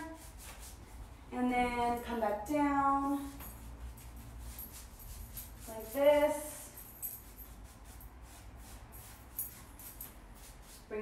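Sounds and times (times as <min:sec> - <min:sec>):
paintbrush brushing on wood: 0:00.0 - 0:01.3, 0:03.1 - 0:11.0.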